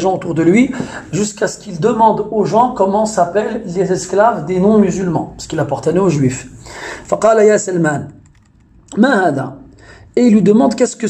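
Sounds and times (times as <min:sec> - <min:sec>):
man speaking: 0:00.0 - 0:08.2, 0:08.9 - 0:11.0.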